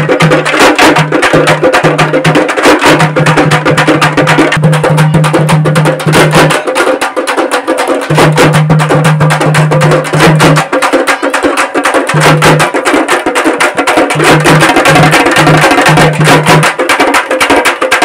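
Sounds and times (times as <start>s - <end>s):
ritual percussion: 0.0s - 18.0s.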